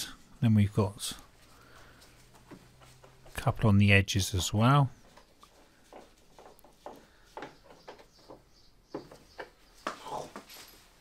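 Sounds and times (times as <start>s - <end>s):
clicks and taps on plastic: 5.1s - 10.0s.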